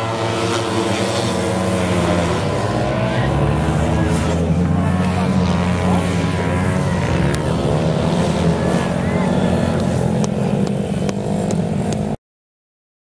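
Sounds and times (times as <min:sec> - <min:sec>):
motorcycle engines racing: 0:00.0 - 0:12.2
voices: 0:01.8 - 0:12.0.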